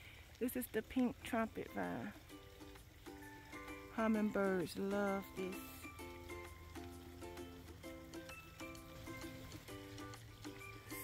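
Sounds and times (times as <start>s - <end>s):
soft background music: 0.4s - 11.0s.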